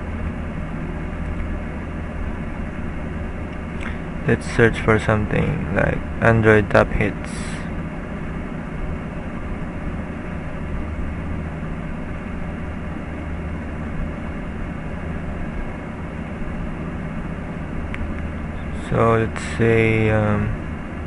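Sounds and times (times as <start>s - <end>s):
background hum and hiss: 0.0s - 21.0s.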